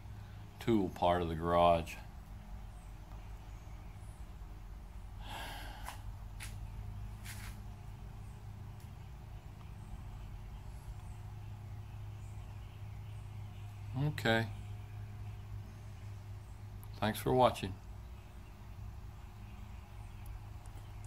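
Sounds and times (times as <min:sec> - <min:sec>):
steady low hum: 0:00.0 - 0:21.0
breathy nasal exhale: 0:05.2 - 0:06.1.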